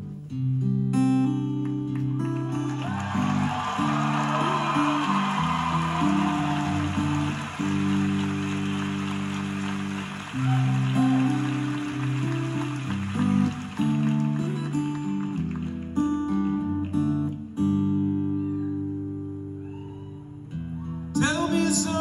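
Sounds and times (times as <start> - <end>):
guitar song with strummed chords: 0.0 - 22.0.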